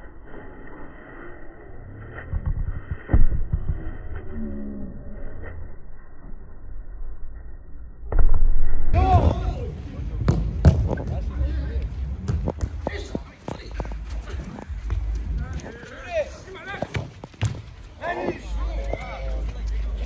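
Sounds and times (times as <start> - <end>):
players shouting: 9.0 - 9.9
ball kicked thudding on turf: 10.2 - 11.2.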